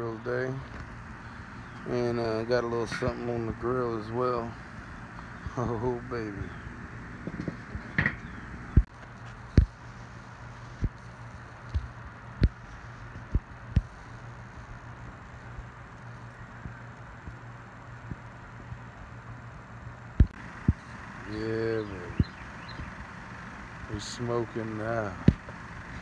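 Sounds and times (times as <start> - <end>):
low rushing hum: 0.0 - 26.0.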